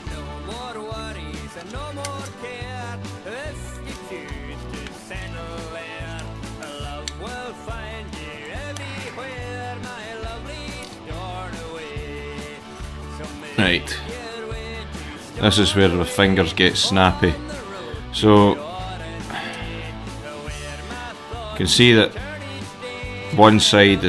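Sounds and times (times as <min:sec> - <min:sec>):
upbeat song with vocals: 0:00.0 - 0:24.0.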